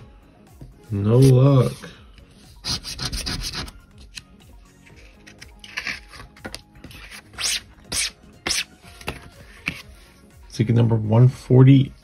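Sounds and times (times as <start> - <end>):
cardboard cards scraping: 4.8 - 10.0.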